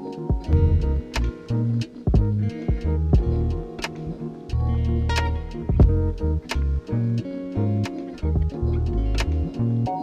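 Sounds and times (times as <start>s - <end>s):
hip-hop beat: 0.0s - 9.6s
bass line: 0.5s - 9.9s.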